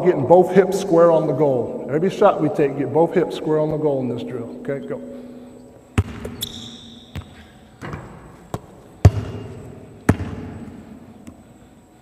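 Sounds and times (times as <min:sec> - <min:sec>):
basketball bouncing on wood floor: 0:06.0 - 0:10.8
brief high squeak: 0:06.3 - 0:07.2.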